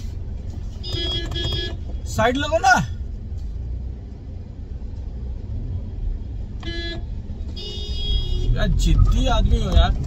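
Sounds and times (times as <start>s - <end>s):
car engine rumble: 0.0s - 10.0s
road traffic: 0.0s - 10.0s
car horn honk: 0.8s - 1.9s, 6.6s - 8.6s.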